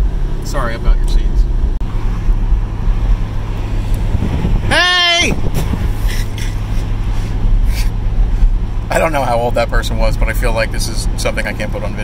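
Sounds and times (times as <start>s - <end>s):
car engine low rumble: 0.0s - 12.0s
road and wind noise: 0.0s - 12.0s.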